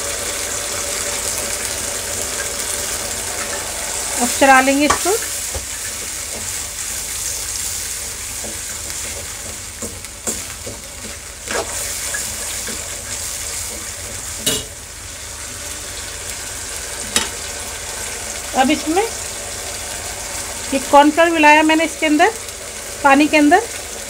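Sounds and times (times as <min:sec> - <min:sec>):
vegetables sizzling in a pan: 0:00.0 - 0:24.0.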